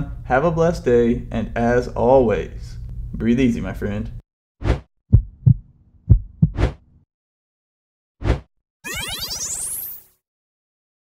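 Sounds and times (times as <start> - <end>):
heartbeat thumps: 5.1 - 6.8.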